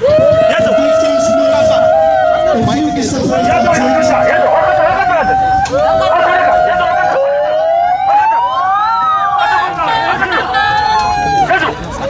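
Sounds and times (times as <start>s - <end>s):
siren-like wailing: 0.0s - 11.5s.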